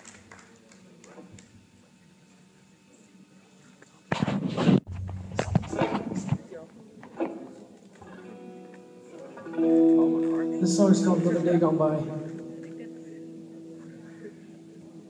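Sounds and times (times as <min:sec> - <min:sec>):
electric guitar chord ringing: 0:07.1 - 0:15.0.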